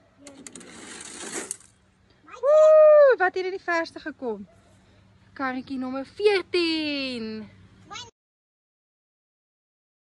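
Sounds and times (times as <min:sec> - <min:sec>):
toy car click: 0:00.2 - 0:01.7
toy car rattling down plastic slide: 0:00.2 - 0:01.8.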